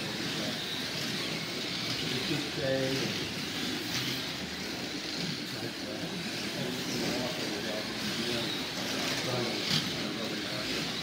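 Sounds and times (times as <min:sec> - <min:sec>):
slot cars whirring: 0:00.0 - 0:11.0
faint background voices: 0:04.5 - 0:11.0.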